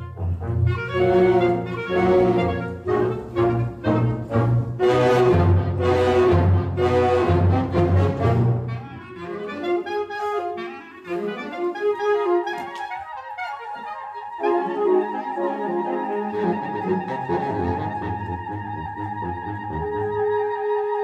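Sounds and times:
wind band playing: 0.0 - 21.0.

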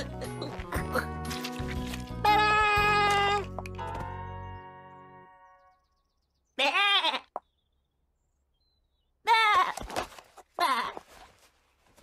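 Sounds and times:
high-pitched cartoon bleat: 2.2 - 3.5, 6.6 - 7.4, 9.2 - 9.8.

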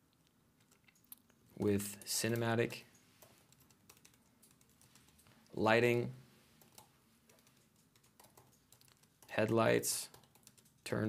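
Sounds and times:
computer keyboard typing: 3.2 - 5.3, 6.6 - 11.0.

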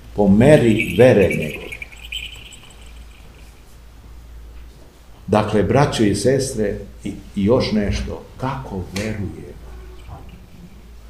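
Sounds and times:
low electrical hum: 0.0 - 11.0
faint high tone: 0.4 - 3.6.

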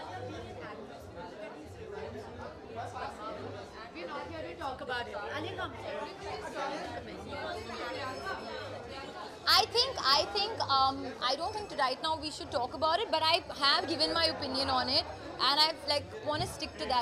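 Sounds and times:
indistinct chatter: 0.0 - 17.0.

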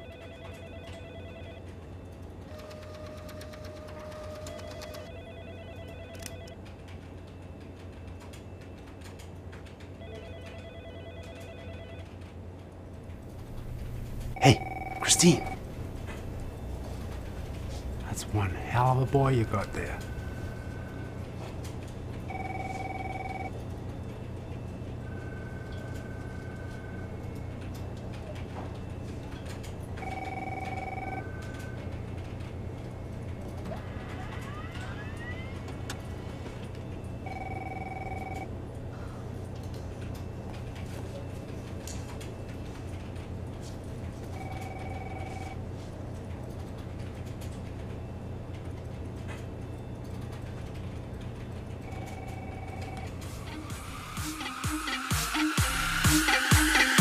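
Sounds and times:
electronic telephone ringing: 0.0 - 1.7, 2.5 - 6.6, 10.0 - 12.1, 13.5 - 17.8, 22.2 - 23.6, 30.0 - 31.8, 37.2 - 38.5, 44.3 - 45.6, 51.8 - 53.1
low hum: 13.0 - 41.3.

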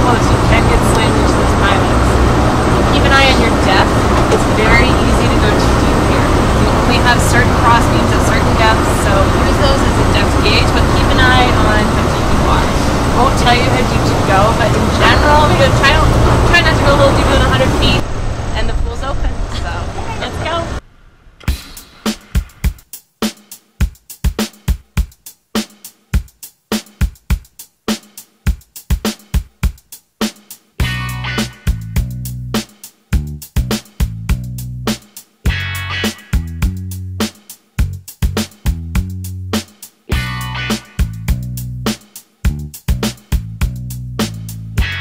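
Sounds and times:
people talking: 0.0 - 2.2, 2.9 - 20.8
boat engine idling: 0.0 - 20.8
music with drum beat: 21.4 - 45.0.

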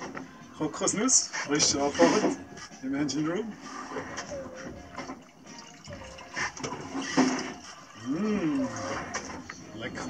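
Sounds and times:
liquid pouring into a glass: 5.1 - 9.2.

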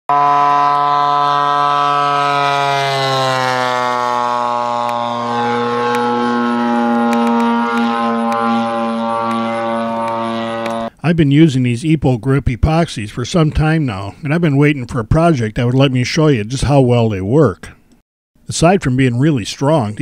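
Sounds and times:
model plane engine droning: 0.1 - 11.0.

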